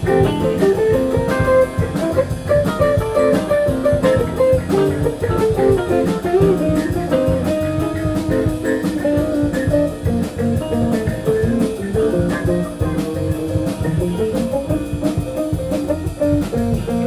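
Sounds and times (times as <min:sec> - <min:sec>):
bass guitar: 0:00.0 - 0:17.0
drum kit: 0:00.0 - 0:17.0
electric guitar quick notes: 0:00.0 - 0:17.0.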